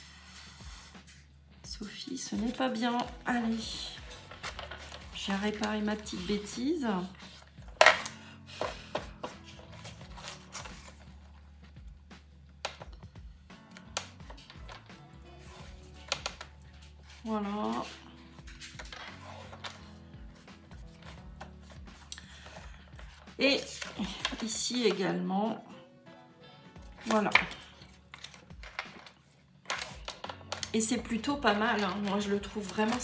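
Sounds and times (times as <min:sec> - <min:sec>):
paper and card being handled: 0:00.0 - 0:01.3, 0:02.2 - 0:11.8, 0:13.7 - 0:25.0, 0:26.8 - 0:33.0
soft background music: 0:00.0 - 0:33.0.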